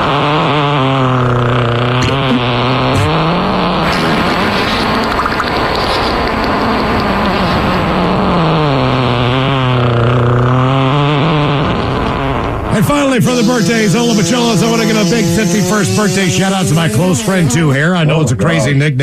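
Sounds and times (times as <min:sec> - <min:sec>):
fart sound effects: 0:00.0 - 0:18.6.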